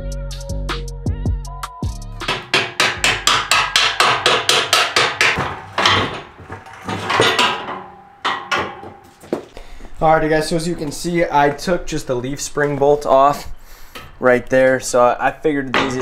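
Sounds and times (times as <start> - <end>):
hammer blows on metal: 2.2 - 6.1.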